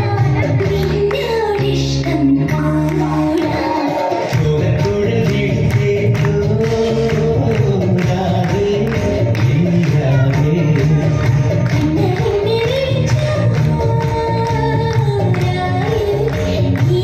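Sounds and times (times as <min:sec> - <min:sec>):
person singing devotional song: 0:00.0 - 0:17.0.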